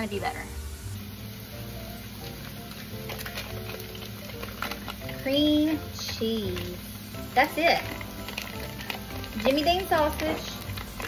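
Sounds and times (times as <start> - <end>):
background music with held notes: 0.0 - 11.0
sausage sizzling in a frying pan: 0.0 - 11.0.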